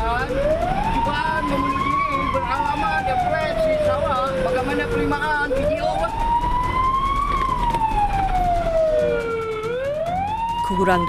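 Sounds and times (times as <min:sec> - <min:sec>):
fire engine siren wailing: 0:00.0 - 0:11.0.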